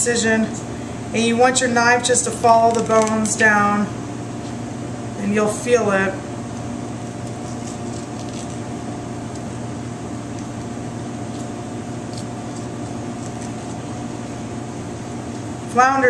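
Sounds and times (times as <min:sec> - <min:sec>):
kitchen equipment humming: 0:00.0 - 0:16.0.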